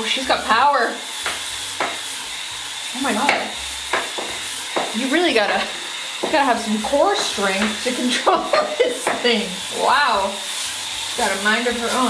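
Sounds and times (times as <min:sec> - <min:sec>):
spin scrub brush motor whining: 0:00.0 - 0:12.0
bristles rasping on tile: 0:01.1 - 0:12.0.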